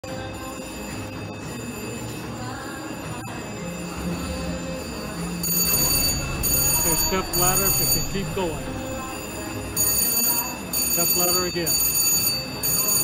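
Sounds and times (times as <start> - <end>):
casino ambience: 0.0 - 13.0
slot machine tunes and chimes: 0.0 - 13.0
slot machine reels spinning: 0.8 - 13.0.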